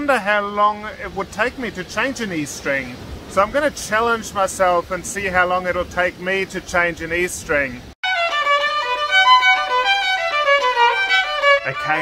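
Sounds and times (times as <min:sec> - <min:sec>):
fast violin melody: 0:08.0 - 0:12.0.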